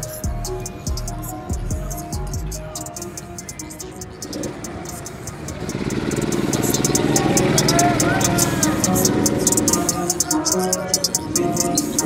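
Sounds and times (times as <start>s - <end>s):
background music with hi-hat beat: 0.0s - 12.0s
go-kart engine running: 4.0s - 10.1s.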